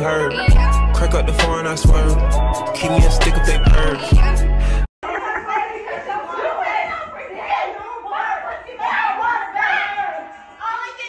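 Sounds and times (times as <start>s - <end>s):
voices chattering: 5.0s - 11.0s.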